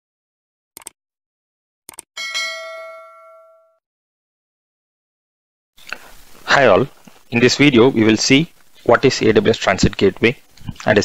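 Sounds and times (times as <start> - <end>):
notification bell ding: 2.2 - 3.8.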